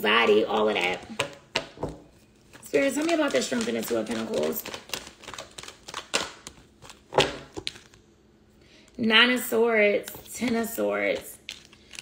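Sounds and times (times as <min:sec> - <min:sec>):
cards slapping and flicking: 0:02.8 - 0:08.0.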